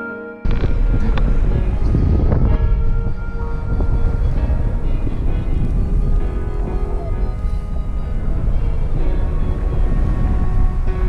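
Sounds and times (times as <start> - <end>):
faint music: 0.0 - 11.0
wind buffeting microphone: 0.4 - 11.0.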